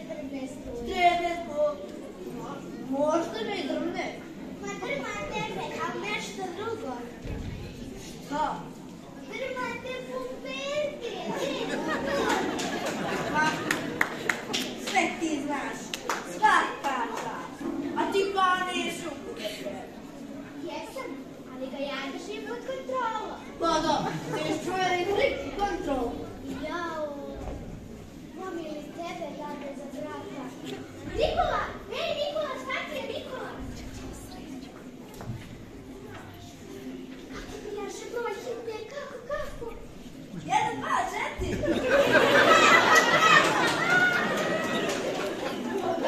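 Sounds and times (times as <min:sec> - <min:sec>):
children chattering in a hall: 0:00.0 - 0:46.0.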